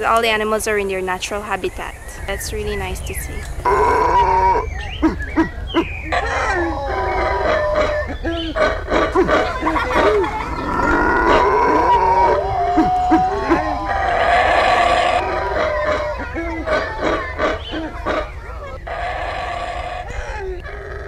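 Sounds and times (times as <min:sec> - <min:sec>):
howler monkeys howling: 0:01.6 - 0:21.0
man howling: 0:03.7 - 0:21.0.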